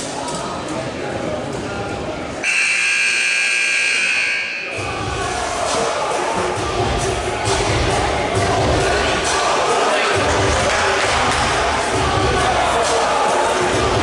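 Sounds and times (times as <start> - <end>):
crowd chatter: 0.0 - 14.0
scoreboard buzzer blare: 2.4 - 4.9.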